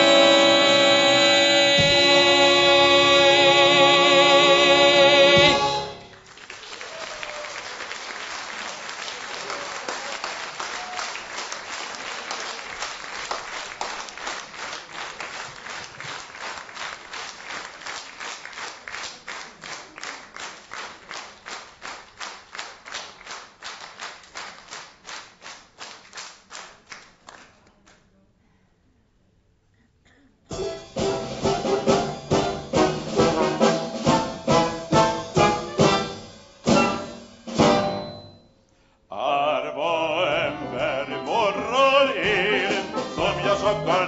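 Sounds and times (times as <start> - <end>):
man singing held note: 0.0 - 6.0, 39.1 - 44.0
rhythmic clapping in unison: 0.0 - 27.4
audience applause: 5.8 - 27.4.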